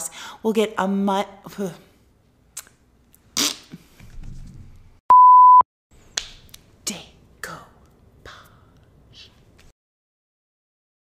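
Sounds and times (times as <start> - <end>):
electronic censor bleep: 5.1 - 5.6.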